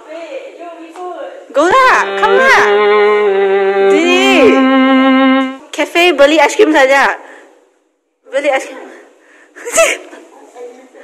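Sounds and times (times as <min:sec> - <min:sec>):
woman speaking: 0:01.4 - 0:02.8, 0:03.9 - 0:04.6.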